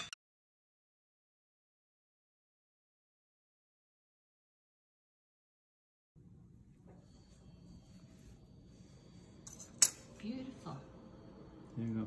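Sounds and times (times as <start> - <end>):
room hum: 6.2 - 12.0.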